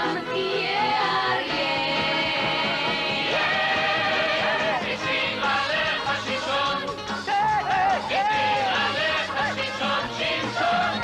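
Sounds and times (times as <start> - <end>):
group singing song: 0.0 - 11.0.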